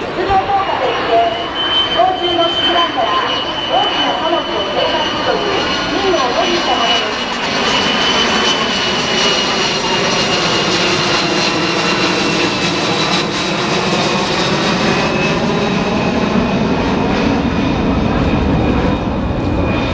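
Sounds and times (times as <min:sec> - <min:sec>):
jet engines roaring overhead: 0:00.0 - 0:19.9.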